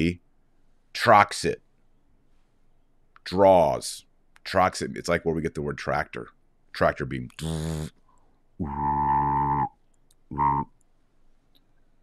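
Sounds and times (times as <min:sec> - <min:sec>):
man making buzzing hum: 0:07.3 - 0:07.9, 0:08.6 - 0:09.7, 0:10.3 - 0:10.7.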